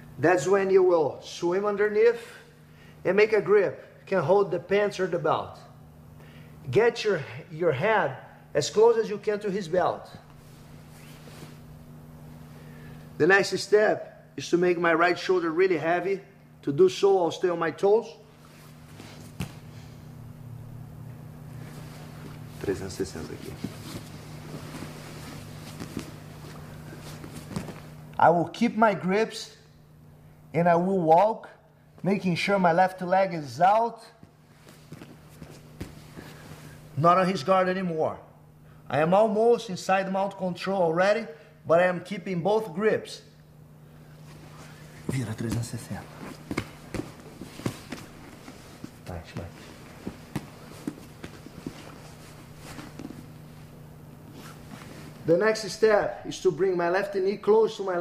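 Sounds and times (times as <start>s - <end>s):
steady low hum: 0.0s - 58.0s
soft rustling of cloth: 10.2s - 12.5s, 21.5s - 28.1s, 34.2s - 36.8s, 44.1s - 55.4s
soft thumps and scuffs on mat: 18.8s - 19.9s, 21.7s - 27.9s, 34.2s - 36.4s, 44.2s - 53.6s.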